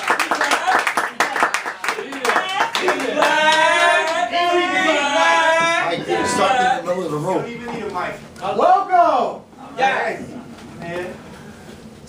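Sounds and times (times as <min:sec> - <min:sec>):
audience clapping: 0:00.0 - 0:04.3.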